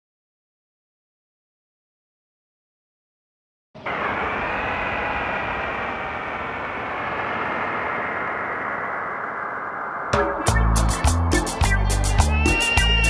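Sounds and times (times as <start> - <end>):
dense vehicle-like noise: 3.8 - 11.2.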